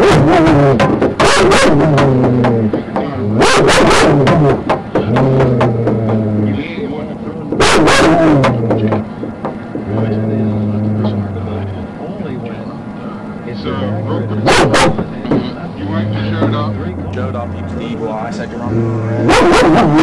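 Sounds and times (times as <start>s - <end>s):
dog barking and whining: 1.2s - 1.8s, 3.4s - 4.2s, 7.6s - 8.2s, 14.4s - 15.0s, 19.2s - 20.0s.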